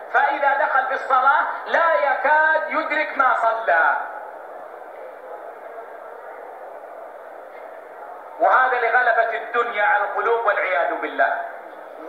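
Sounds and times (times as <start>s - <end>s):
man's voice: 0.1s - 4.1s, 8.4s - 11.5s.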